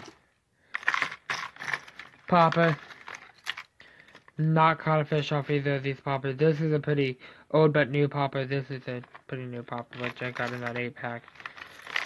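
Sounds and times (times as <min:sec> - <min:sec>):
fishing lures clattering on plastic: 0:00.0 - 0:04.4, 0:09.0 - 0:12.0.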